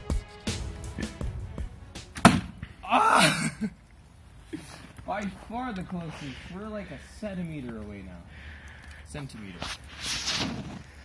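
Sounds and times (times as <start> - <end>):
background music: 0.0 - 3.6
arrow striking target thwack: 2.1 - 2.6.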